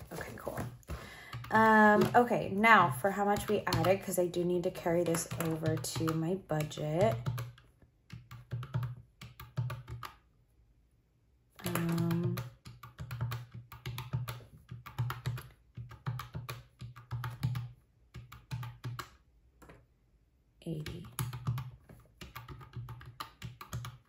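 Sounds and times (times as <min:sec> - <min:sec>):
calculator keys clicking: 0:03.1 - 0:10.2, 0:20.9 - 0:24.0.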